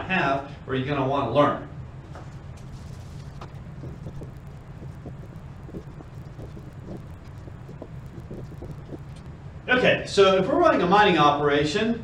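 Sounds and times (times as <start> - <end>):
low room hum: 0.0 - 12.0
marker strokes on whiteboard: 2.6 - 9.2.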